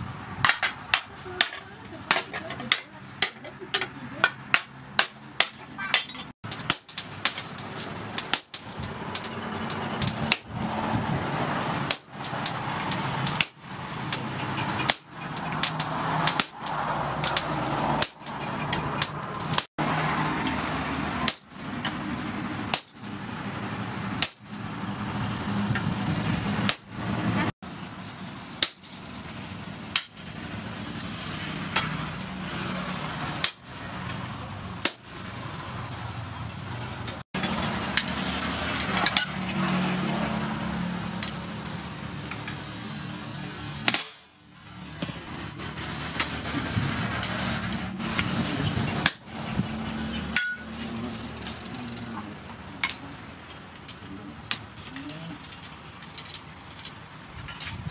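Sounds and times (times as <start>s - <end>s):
steady background noise: 0.0s - 57.9s.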